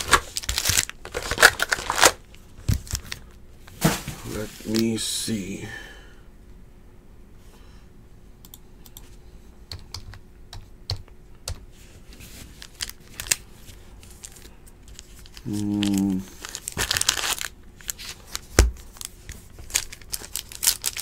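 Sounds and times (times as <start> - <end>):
foil wrapper tearing rip: 0.0 - 2.2, 15.1 - 21.0
foil wrappers crinkling: 0.0 - 5.0, 12.2 - 21.0
steady low hum: 0.0 - 21.0.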